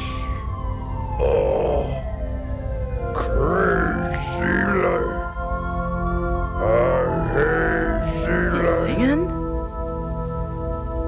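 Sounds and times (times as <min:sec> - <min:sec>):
rough wavering vocal sounds: 0:00.0 - 0:02.2, 0:03.0 - 0:05.4, 0:06.6 - 0:09.3
sustained synthesizer tones: 0:00.0 - 0:11.0.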